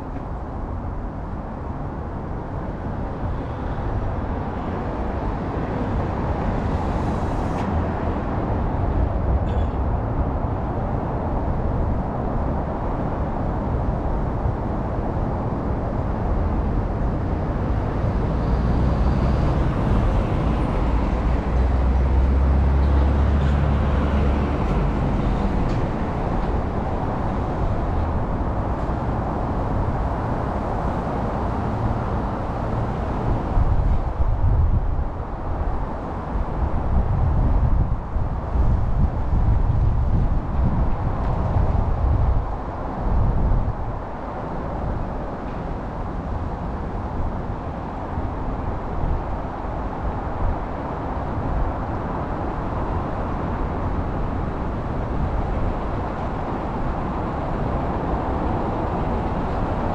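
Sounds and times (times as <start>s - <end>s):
city road traffic: 0.0s - 59.9s.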